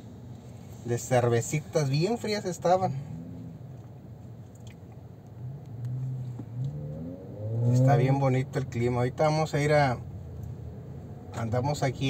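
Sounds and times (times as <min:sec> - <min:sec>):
car engine accelerating: 0:05.3 - 0:09.0.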